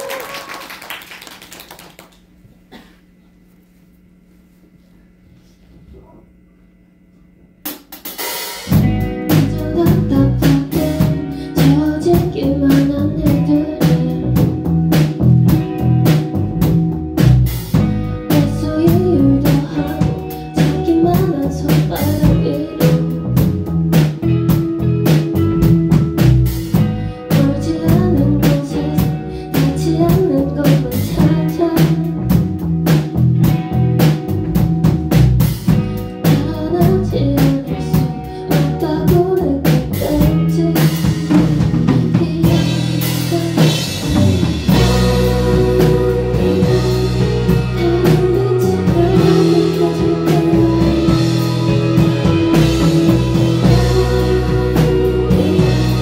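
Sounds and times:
drum kit: 0:07.6 - 0:56.0
electric guitar: 0:08.6 - 0:56.0.

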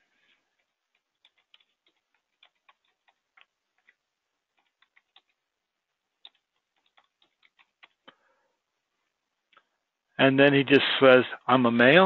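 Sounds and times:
keyboard typing clicks: 0:00.6 - 0:05.4, 0:06.2 - 0:08.2.

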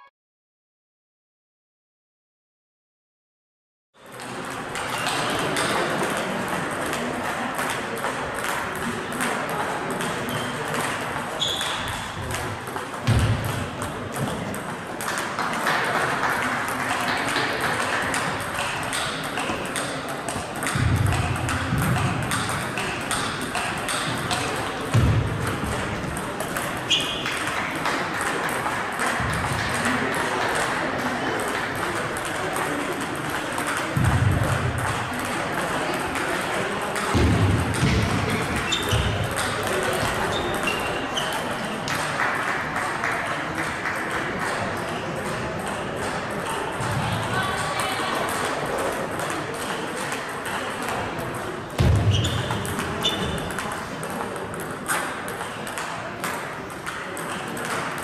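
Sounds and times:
table tennis balls clicking: 0:04.1 - 0:47.0, 0:47.6 - 0:58.0.

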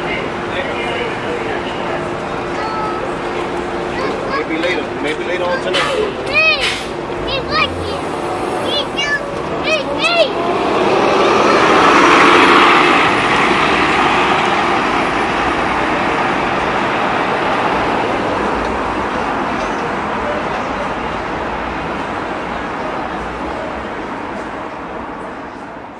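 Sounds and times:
bus pulling away: 0:00.0 - 0:25.9
street traffic: 0:00.0 - 0:25.9.

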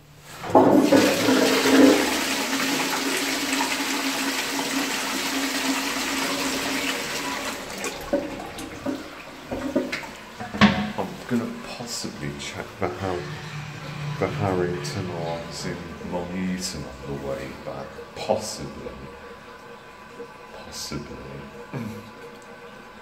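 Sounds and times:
toilet flush water rushing: 0:00.2 - 0:23.0
water splashes and knocks: 0:00.4 - 0:02.2, 0:07.7 - 0:11.8.

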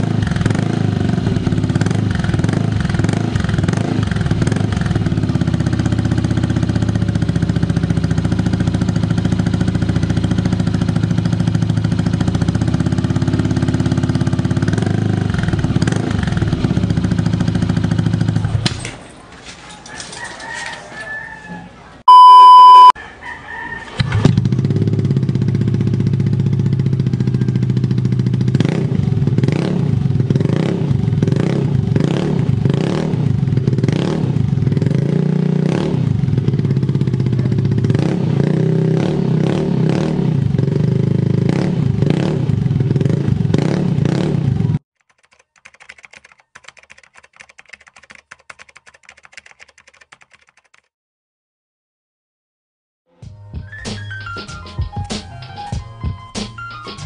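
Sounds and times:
rooster crowing: 0:19.8 - 0:22.0, 0:23.0 - 0:24.2
loud electronic beep: 0:22.1 - 0:23.0
keyboard typing clicks: 0:45.0 - 0:50.9.

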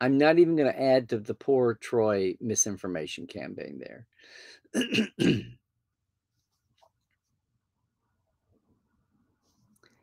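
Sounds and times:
breath in: 0:04.2 - 0:04.7
man clearing his throat: 0:04.8 - 0:05.6.

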